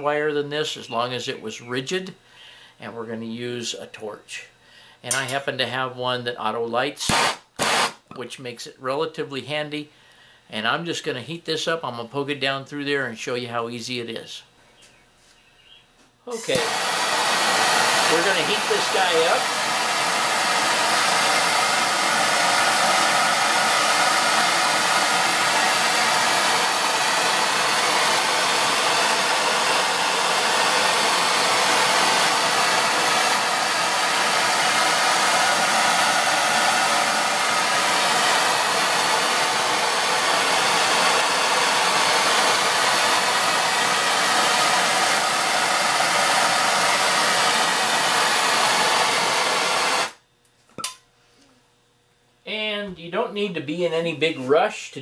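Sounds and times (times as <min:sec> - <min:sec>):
gas torch hissing: 0:07.0 - 0:08.0, 0:16.3 - 0:50.2.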